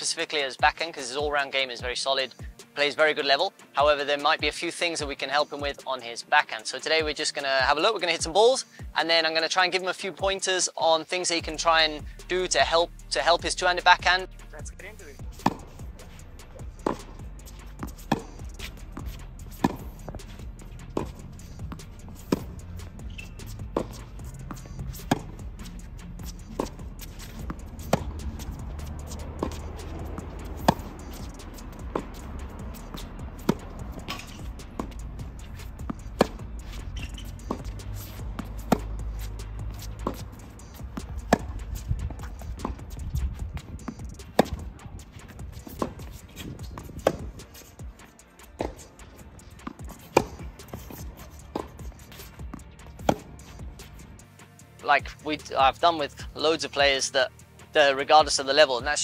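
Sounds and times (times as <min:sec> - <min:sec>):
background music: 0:00.0 - 0:59.0
tennis balls struck with racquets: 0:15.2 - 0:54.3.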